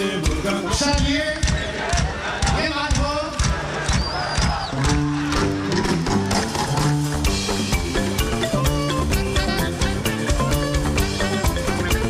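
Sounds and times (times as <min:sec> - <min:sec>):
plucked bass lute: 0:04.8 - 0:12.0.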